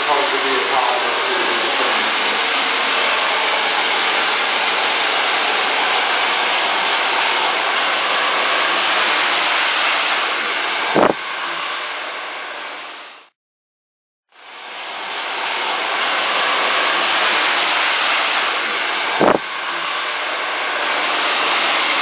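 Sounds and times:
hair dryer blowing: 0.0s - 13.4s, 14.4s - 22.0s.

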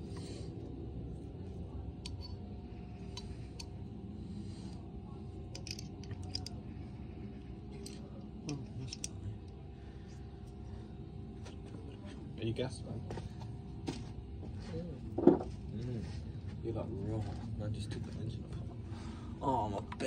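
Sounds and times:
small metal parts clinking: 5.5s - 6.6s, 7.7s - 9.2s.

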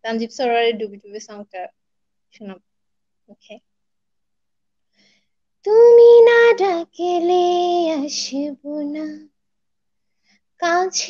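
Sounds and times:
woman singing unaccompanied: 5.6s - 9.3s, 10.6s - 11.0s.

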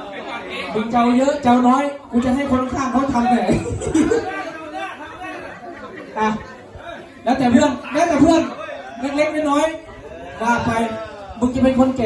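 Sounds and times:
voices chattering: 0.0s - 12.0s.

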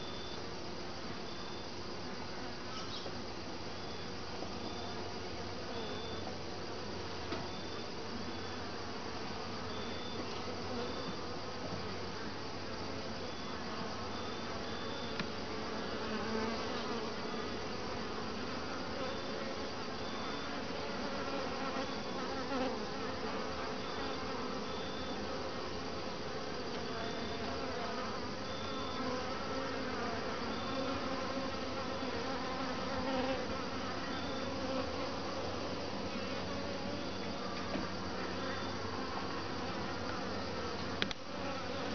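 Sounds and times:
bees buzzing: 1.4s - 41.9s.

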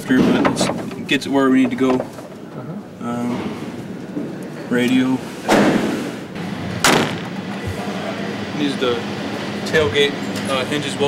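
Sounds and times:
truck door slamming: 6.8s - 7.8s.

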